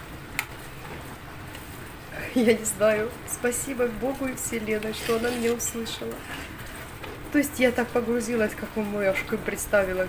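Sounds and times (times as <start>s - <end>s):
spoon stirring frothing milk: 4.8s - 6.5s.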